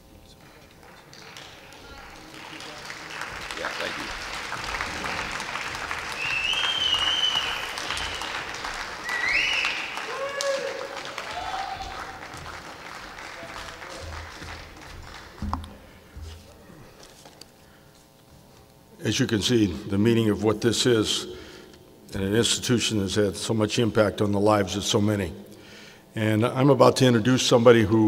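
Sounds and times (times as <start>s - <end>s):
audience applauding: 0.8s - 15.7s
shrill whistles: 6.1s - 12.0s
people shouting: 9.8s - 12.2s.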